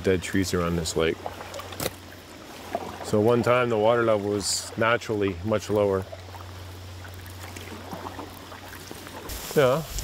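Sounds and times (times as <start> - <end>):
paddle swishing in water: 0.6 - 4.8, 6.0 - 10.0.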